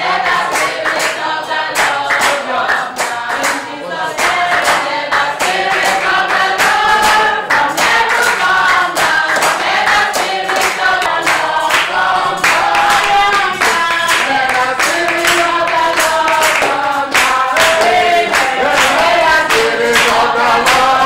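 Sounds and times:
congregation singing: 0.0s - 21.0s
rhythmic hand-clapping: 0.0s - 21.0s.

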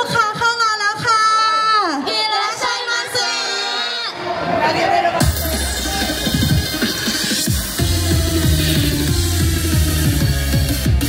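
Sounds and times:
young women singing: 2.0s - 4.1s
backing track: 5.1s - 11.0s.

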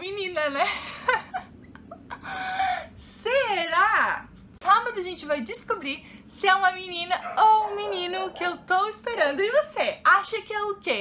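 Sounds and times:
woman laughing: 0.5s - 2.9s.

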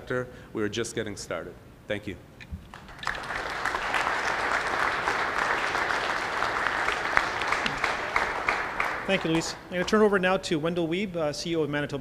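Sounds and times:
audience applauding: 2.7s - 10.1s.

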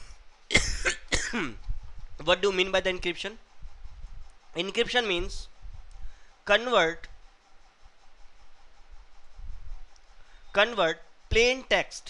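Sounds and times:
person coughing: 0.5s - 1.6s.

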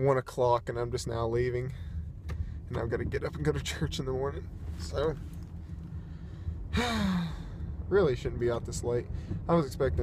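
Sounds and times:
man sighing: 6.4s - 7.8s.

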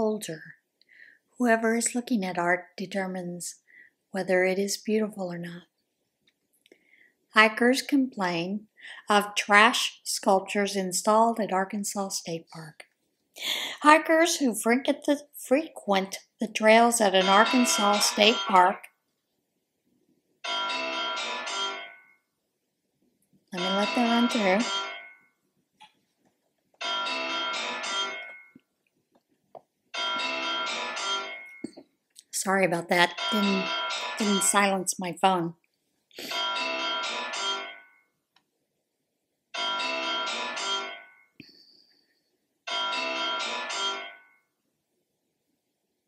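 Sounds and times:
bell-like phone ringtone: 17.0s - 18.9s, 20.4s - 22.3s, 23.6s - 25.4s, 26.8s - 28.7s, 29.9s - 31.8s, 32.9s - 34.8s, 36.2s - 38.2s, 39.5s - 41.4s, 42.6s - 44.6s.

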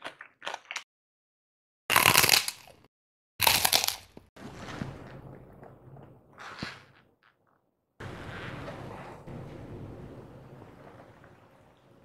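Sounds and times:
crunching of crisp food: 0.0s - 0.8s, 1.9s - 4.9s.

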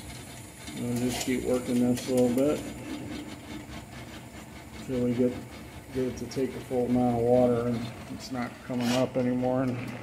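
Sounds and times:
drain cleaning machine running: 0.0s - 10.0s.

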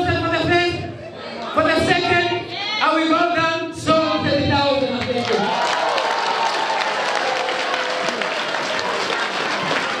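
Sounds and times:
audience clapping: 5.1s - 10.0s.

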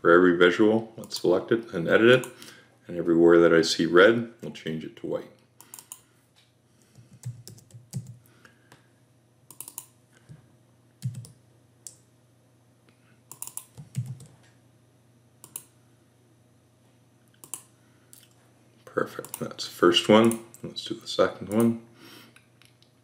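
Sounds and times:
computer keyboard typing: 7.2s - 8.2s, 9.5s - 9.9s, 11.0s - 11.4s, 13.3s - 14.4s, 15.4s - 15.7s.

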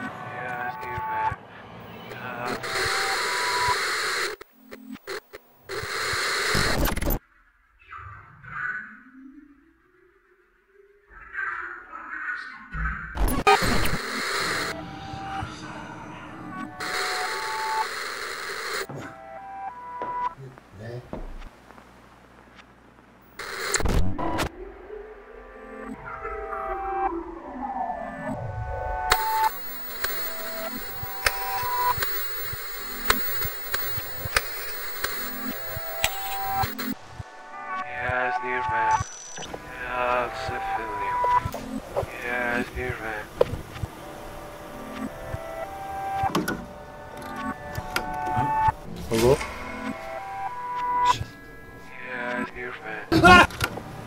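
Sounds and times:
television static hiss: 0.0s - 7.2s, 13.2s - 14.8s, 16.6s - 18.9s, 20.4s - 24.5s, 29.1s - 49.4s
eerie synth notes: 24.5s - 33.2s, 43.9s - 52.7s
clicks: 29.1s - 37.0s
thin steady whine: 29.1s - 43.3s.

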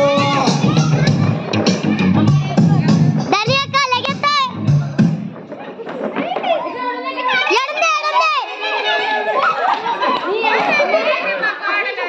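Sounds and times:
excited voices calling out: 6.4s - 12.0s.

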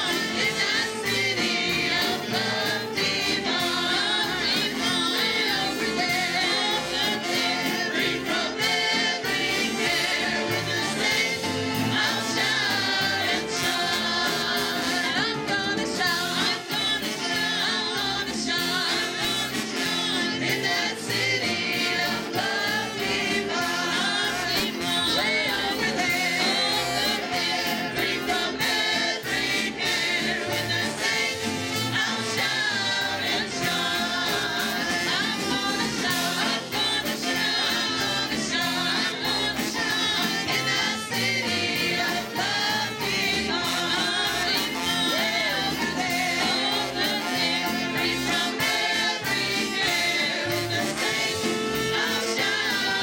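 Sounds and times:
choir singing through speakers: 0.0s - 53.0s.

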